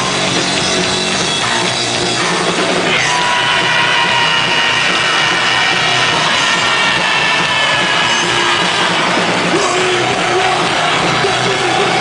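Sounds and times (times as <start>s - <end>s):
distorted guitar sliding high notes: 0.0s - 12.0s
punk band playing: 0.0s - 12.0s.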